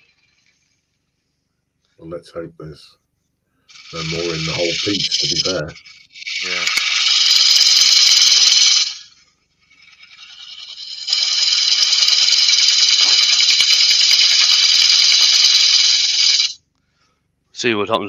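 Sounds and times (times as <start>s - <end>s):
lathe gouge cutting wood: 3.7s - 9.2s, 9.8s - 16.6s.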